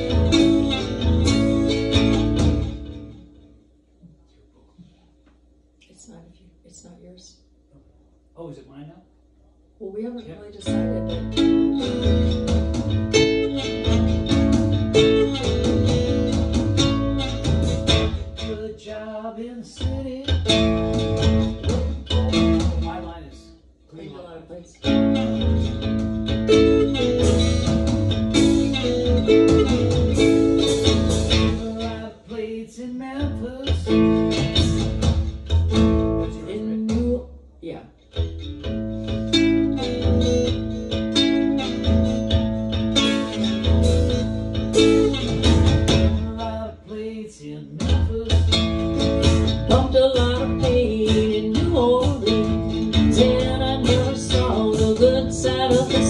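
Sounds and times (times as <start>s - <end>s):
acoustic guitar: 0.0s - 5.1s, 10.1s - 56.0s.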